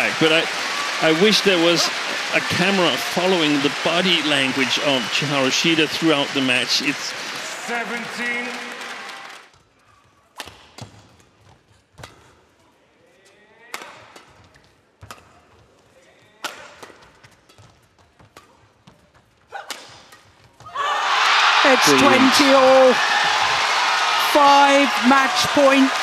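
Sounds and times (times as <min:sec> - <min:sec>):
racket hitting shuttlecock: 0:12.0 - 0:12.4, 0:13.7 - 0:15.4, 0:16.4 - 0:20.6.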